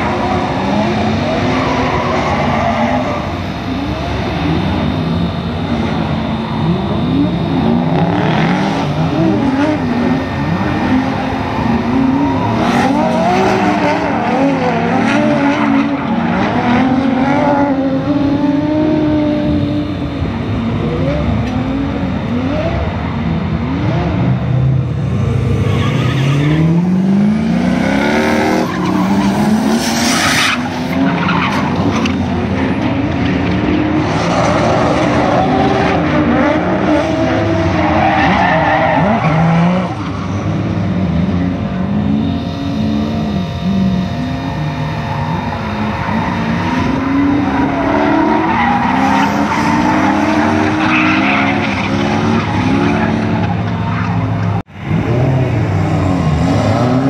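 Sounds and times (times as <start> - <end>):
tyres squealing and skidding: 0.0 - 5.0, 6.0 - 19.3, 25.0 - 54.6
car engine revving: 0.0 - 57.0.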